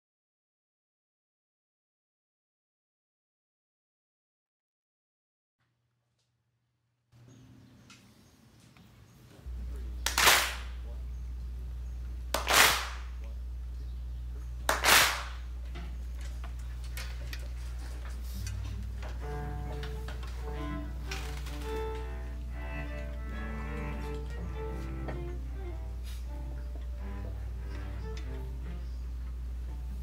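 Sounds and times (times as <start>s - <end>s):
cellos playing sustained notes: 9.4s - 10.1s, 10.8s - 12.3s, 17.7s - 30.0s
low drone: 9.4s - 30.0s
group hand claps: 10.0s - 10.9s, 12.3s - 13.3s, 14.6s - 15.6s.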